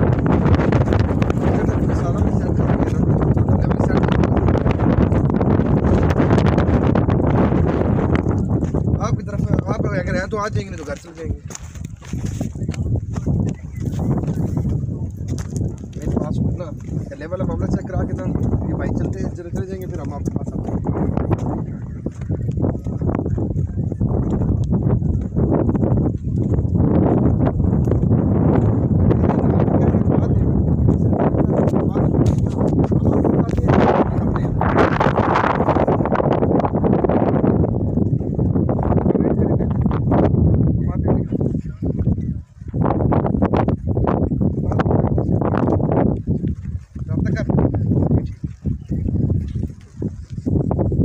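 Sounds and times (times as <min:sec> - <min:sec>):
footsteps crunching on dirt: 0:00.0 - 0:40.4, 0:41.1 - 0:51.0
wind buffeting microphone: 0:00.0 - 0:51.0.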